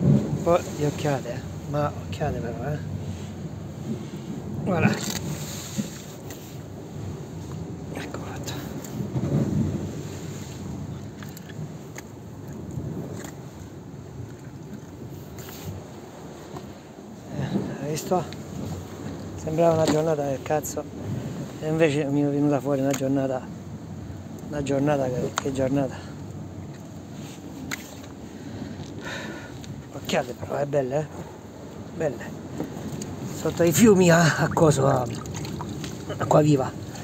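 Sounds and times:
sea waves washing: 0.0 - 37.0
wind rumbling on microphone: 0.0 - 37.0.

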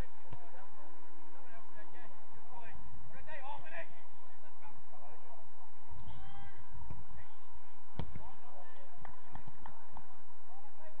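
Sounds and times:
distant players shouting: 5.8 - 11.0.

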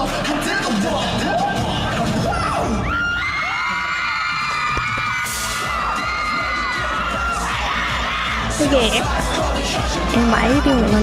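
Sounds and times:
pop music with heavy bass beat: 0.0 - 11.0
crowd of fans screaming: 1.2 - 11.0.

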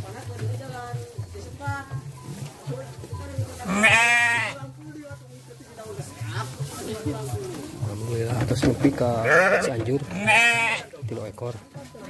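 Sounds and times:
sheep bleating: 3.6 - 4.7, 9.2 - 10.9.

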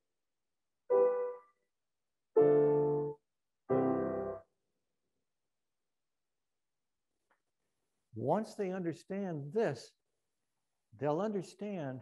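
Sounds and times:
grand piano chords: 0.9 - 1.4, 2.4 - 4.4.

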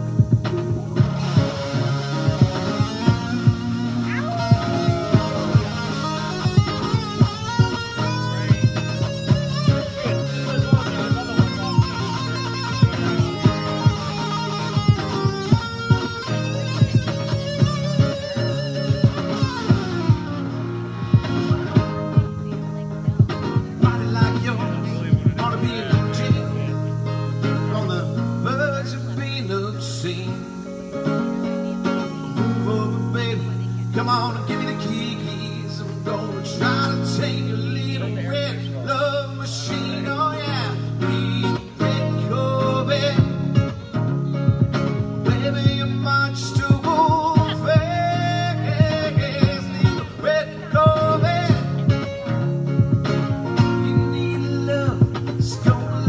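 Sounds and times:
electric guitar strummed chords: 0.0 - 56.0.

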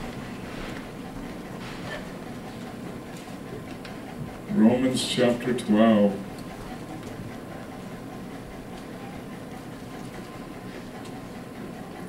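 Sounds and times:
faint constant hum: 0.0 - 12.0.

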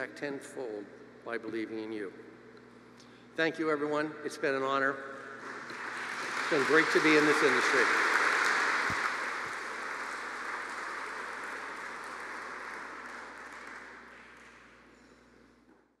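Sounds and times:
audience applauding: 5.4 - 14.8.

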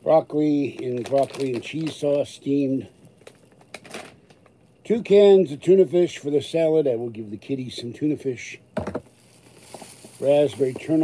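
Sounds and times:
packaging crinkling and clicking: 0.6 - 2.3, 3.0 - 4.6, 9.2 - 11.0
soft rustle: 9.1 - 11.0.

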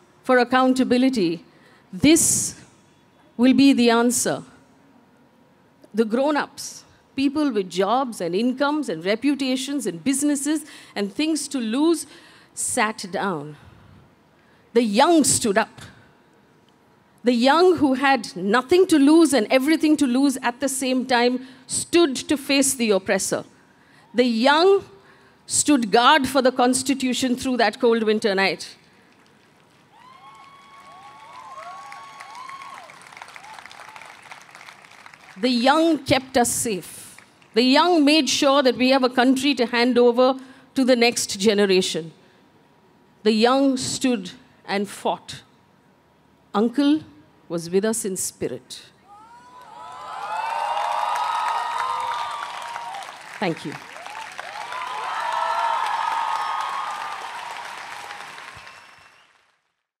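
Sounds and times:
audience clapping: 29.1 - 35.4, 50.1 - 59.8
whoops and cheers: 29.9 - 34.2, 49.1 - 59.3.

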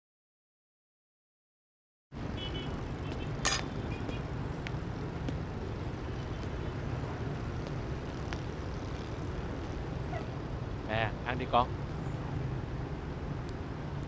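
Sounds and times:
distant traffic rumble: 2.2 - 14.0.

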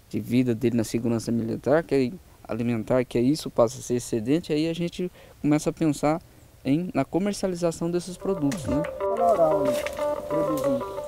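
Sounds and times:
man talking: 0.0 - 11.0
background music held note: 8.1 - 11.0.

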